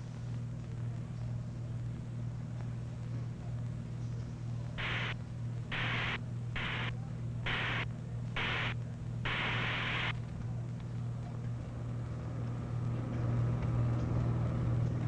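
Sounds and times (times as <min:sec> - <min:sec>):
steady low hum: 0:04.5 - 0:10.2
bursts of hiss: 0:04.8 - 0:06.9, 0:07.5 - 0:07.8, 0:08.4 - 0:08.7, 0:09.3 - 0:10.1.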